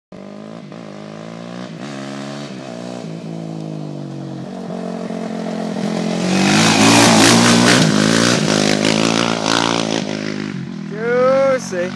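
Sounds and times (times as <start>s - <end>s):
quad engine revving: 0.2s - 11.9s.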